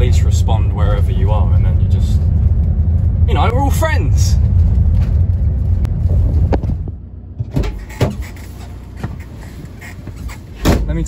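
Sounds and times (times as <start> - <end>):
van engine rumble: 0.0 - 11.0.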